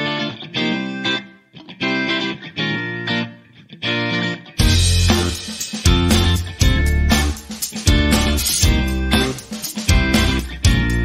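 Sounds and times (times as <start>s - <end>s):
guitar chords: 0.0s - 11.0s.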